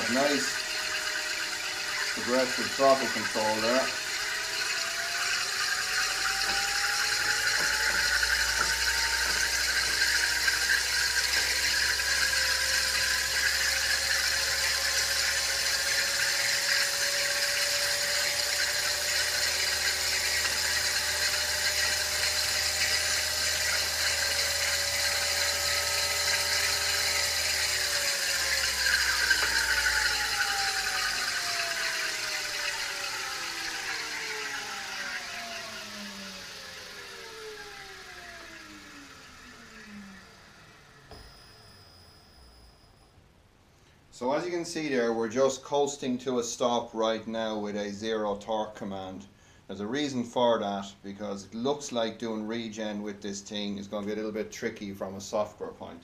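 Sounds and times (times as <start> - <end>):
electric motor whine: 0.0 - 42.9.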